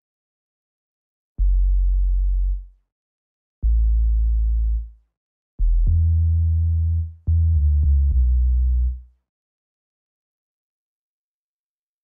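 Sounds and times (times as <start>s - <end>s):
deep synthesized bass notes: 1.4s - 2.7s, 3.6s - 4.9s, 5.6s - 9.0s.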